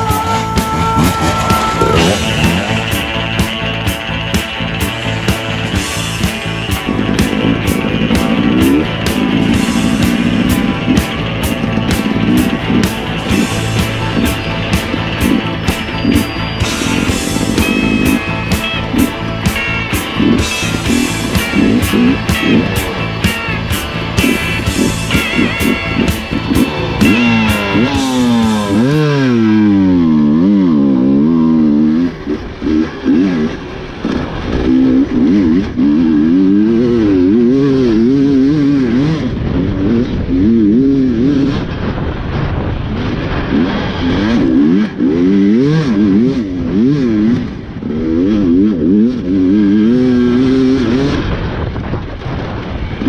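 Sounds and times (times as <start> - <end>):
guitar music: 0.0 - 51.5
motorcycle engine revving: 0.0 - 53.0.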